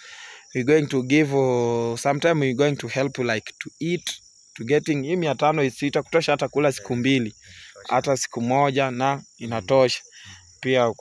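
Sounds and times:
crickets trilling: 0:00.0 - 0:11.0
man talking: 0:00.2 - 0:11.0.

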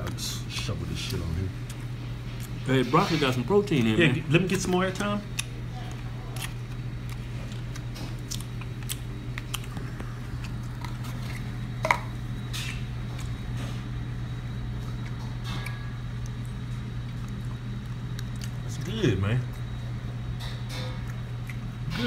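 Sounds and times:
chewing: 0:04.6 - 0:11.6, 0:14.8 - 0:18.9, 0:21.0 - 0:22.0.

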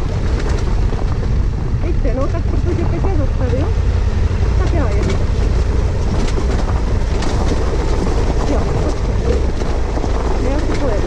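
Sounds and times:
motorcycle engine running: 0:00.0 - 0:11.0
wind buffeting microphone: 0:00.0 - 0:11.0
stones crunching under tyres: 0:03.3 - 0:11.0.

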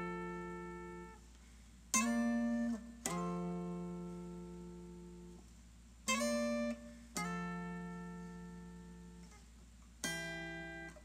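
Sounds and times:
guitar chord ringing: 0:00.0 - 0:01.2, 0:01.9 - 0:05.4, 0:06.0 - 0:09.4, 0:10.0 - 0:11.0.

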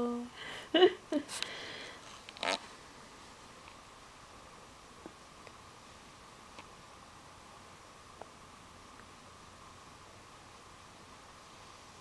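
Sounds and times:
person humming: 0:00.0 - 0:00.4.

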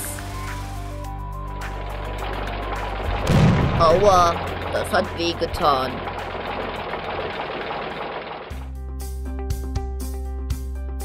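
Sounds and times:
background music with keyboard: 0:00.0 - 0:06.6, 0:08.6 - 0:11.0.

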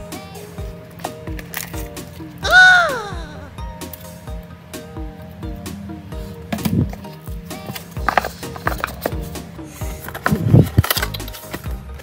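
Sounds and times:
background music: 0:00.0 - 0:12.0
cardboard boxes clacking: 0:07.7 - 0:09.3, 0:09.9 - 0:11.8.

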